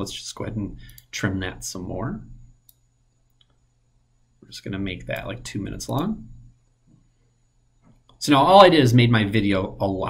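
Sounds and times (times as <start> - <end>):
faint mouse clicks: 0.8 - 1.1, 2.6 - 3.6.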